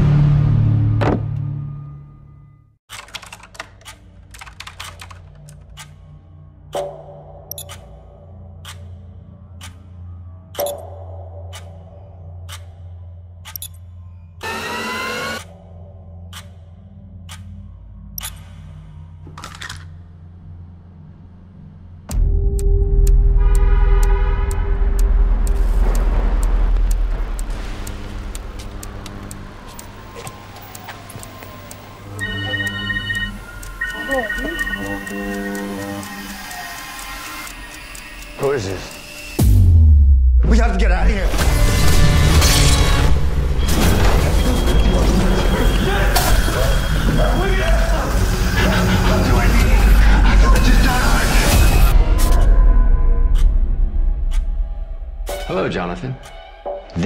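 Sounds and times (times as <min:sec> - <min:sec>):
steady ticking: 0:22.1 - 0:39.6
deep bass boom: 0:39.4 - 0:42.2.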